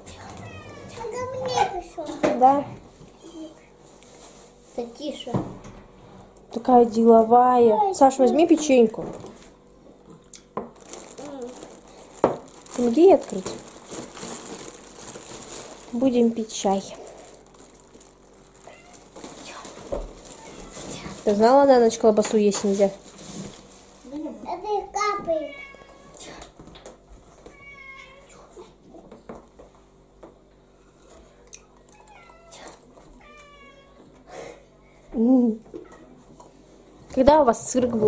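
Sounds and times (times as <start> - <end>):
low steady hum: 0.0 - 38.0
cat meowing: 0.2 - 1.6, 18.6 - 19.2, 25.4 - 26.2, 27.5 - 28.3, 31.9 - 34.1
plastic bag crinkling: 10.6 - 22.2.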